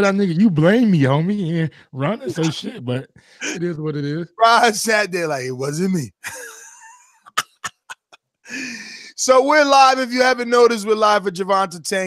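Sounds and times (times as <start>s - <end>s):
man wheezing laugh: 6.2s - 9.2s.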